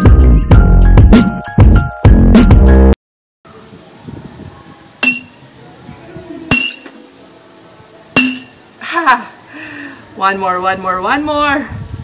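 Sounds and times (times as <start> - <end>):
mallet clinking on glass bottle: 5.0 - 5.4, 6.5 - 6.9, 8.2 - 8.6.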